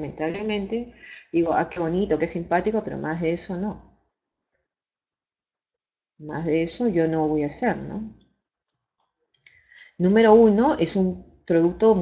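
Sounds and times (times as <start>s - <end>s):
woman talking over a microphone: 0.0s - 3.8s
woman breathing softly: 0.9s - 1.4s, 9.4s - 10.0s.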